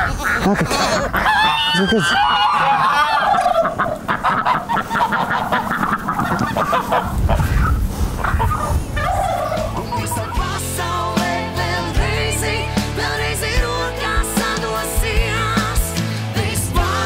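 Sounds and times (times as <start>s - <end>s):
geese cackling and honking: 0.0s - 10.6s.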